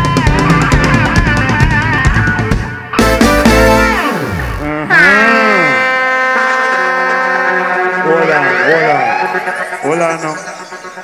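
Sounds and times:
synthesizer chord bending down: 0.0 - 11.0.

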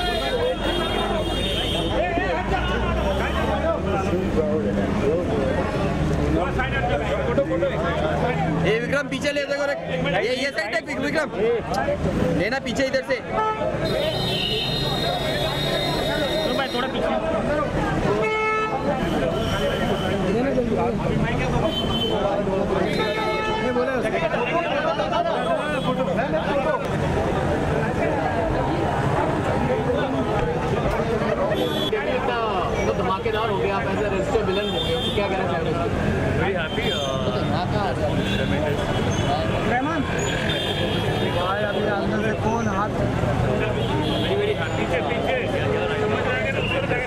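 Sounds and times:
people talking: 0.0 - 47.0.

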